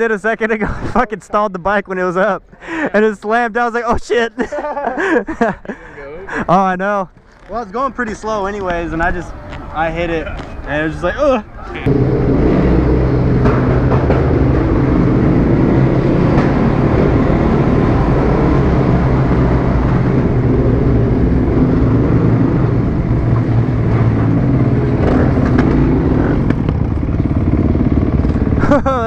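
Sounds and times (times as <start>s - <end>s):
motorcycle engine in a tunnel: 11.8s - 29.0s.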